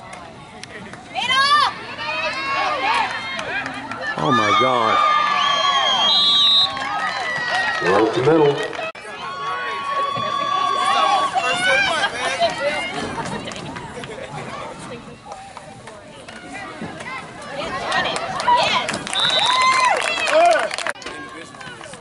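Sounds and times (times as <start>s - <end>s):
spectators shouting and cheering: 0.0s - 22.0s.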